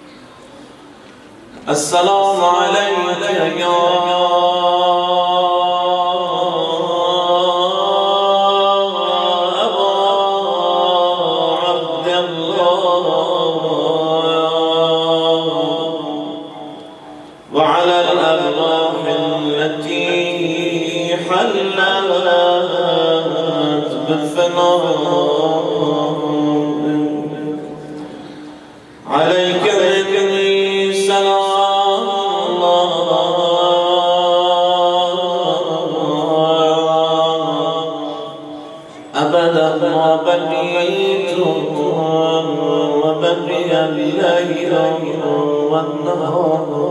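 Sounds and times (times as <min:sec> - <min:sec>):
man chanting into a microphone: 0:01.6 - 0:28.3, 0:29.0 - 0:46.9.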